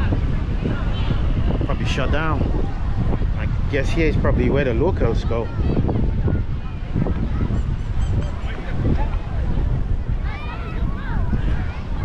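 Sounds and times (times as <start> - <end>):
faint crowd voices and calls: 0.0 - 12.0
wind buffeting microphone: 0.0 - 12.0.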